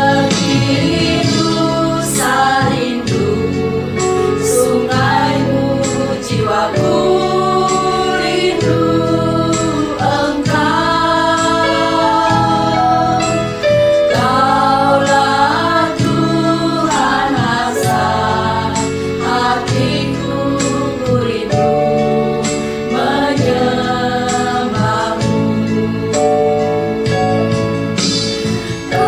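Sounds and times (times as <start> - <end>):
women singing worship song: 0.0 - 26.3, 28.4 - 29.0.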